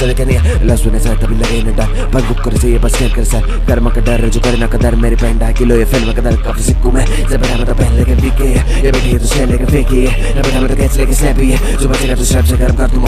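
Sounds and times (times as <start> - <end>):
deep bass line: 0.0 - 13.0
hip-hop beat: 0.0 - 13.0
man rapping: 0.0 - 13.0.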